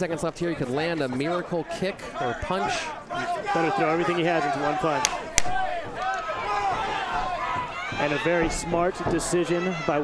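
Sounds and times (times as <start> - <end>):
voices shouting: 0.7 - 10.0
sharp smacks: 5.0 - 5.6.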